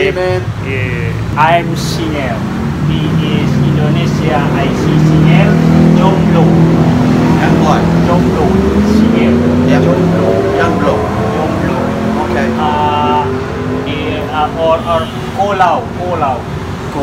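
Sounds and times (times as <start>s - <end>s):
voices: 0.0s - 17.0s.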